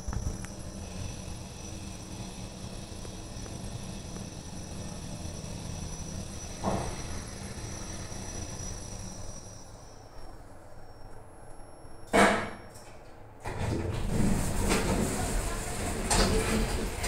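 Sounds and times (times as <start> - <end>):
elevator machinery humming: 0.0 - 17.0.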